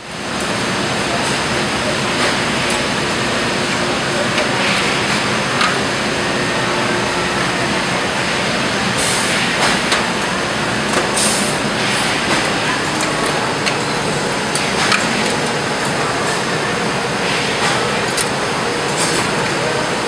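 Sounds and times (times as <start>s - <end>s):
loud machinery noise: 0.0s - 20.0s.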